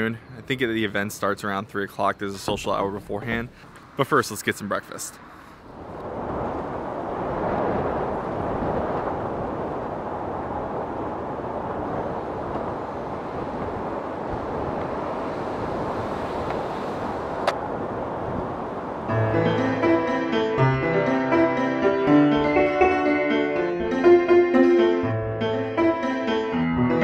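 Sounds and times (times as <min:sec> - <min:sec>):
steady rushing noise: 0:00.6 - 0:21.2.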